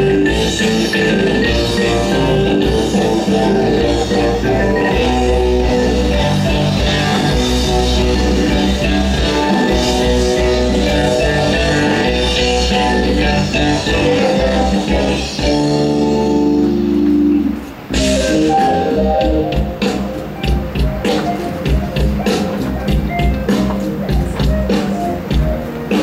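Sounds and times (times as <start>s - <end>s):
drum kit: 0.0s - 26.0s
electric guitar: 0.0s - 26.0s
rock band jamming through pa: 0.0s - 26.0s.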